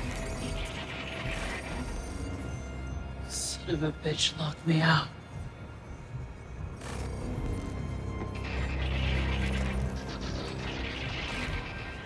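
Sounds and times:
mechanical sci-fi sound effects: 0.0s - 3.0s, 6.7s - 12.0s
low drone of score music: 0.0s - 12.0s.

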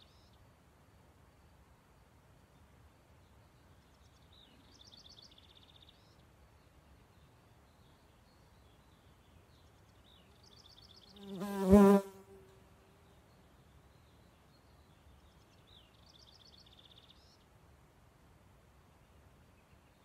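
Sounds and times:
flying insect buzzing: 11.2s - 12.6s.

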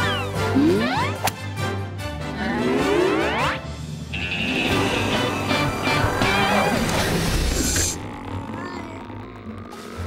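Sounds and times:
cartoon background music: 0.0s - 7.1s.

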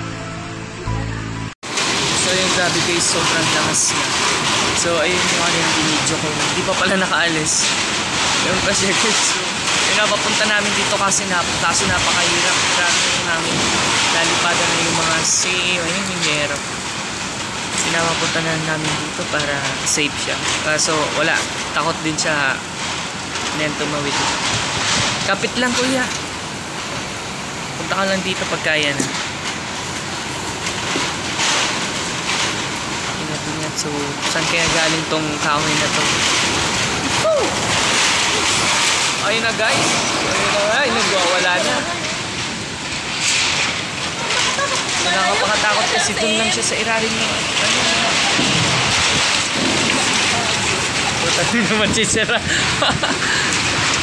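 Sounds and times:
person's voice: 0.0s - 16.6s, 17.8s - 22.7s, 23.4s - 24.5s, 25.2s - 26.2s, 27.8s - 29.2s, 33.1s - 37.5s, 38.4s - 42.4s, 44.1s - 53.7s
heavy rain pouring: 1.6s - 54.0s
strong wind: 1.6s - 54.0s.

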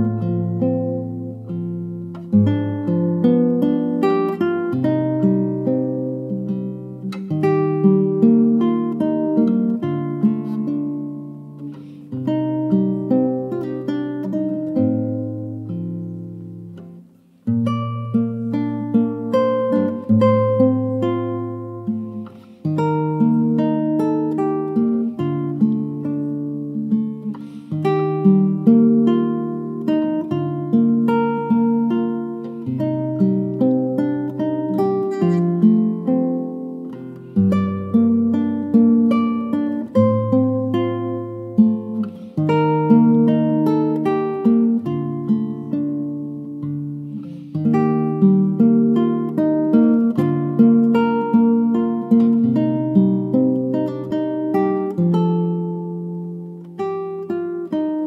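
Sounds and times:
classical guitar fingerstyle: 0.0s - 58.0s.

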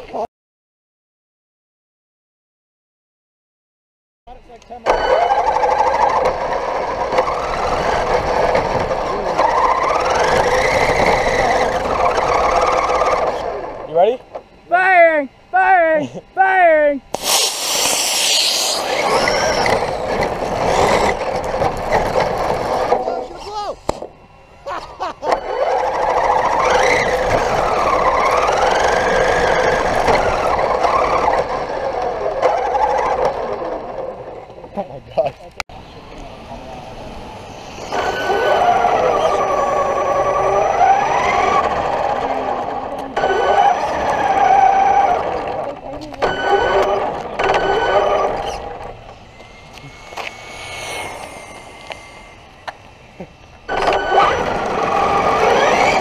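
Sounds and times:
rc truck motor whine: 4.6s - 14.4s, 17.1s - 34.7s, 35.8s - 56.0s
loud hiss: 17.1s - 19.8s
rushing noise: 17.2s - 22.9s, 48.2s - 56.0s.

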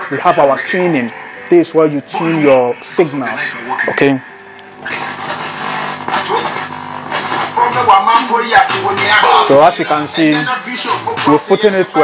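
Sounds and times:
radio static with broadcast sound: 0.0s - 12.0s.

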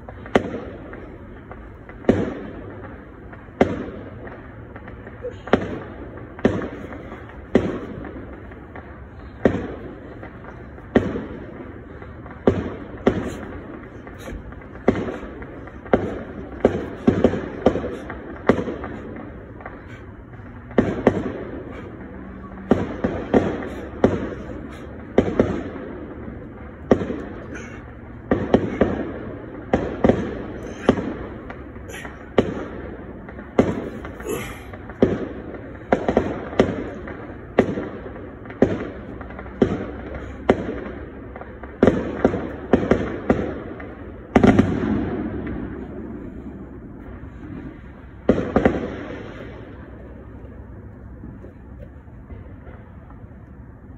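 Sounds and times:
fireworks and firecrackers banging: 0.0s - 53.9s.

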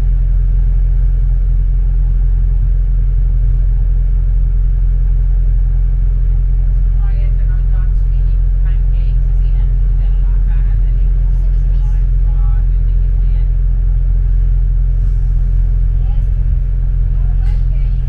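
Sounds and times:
bus engine rumble: 0.0s - 18.0s
passengers chattering: 6.8s - 14.3s, 15.0s - 18.0s.

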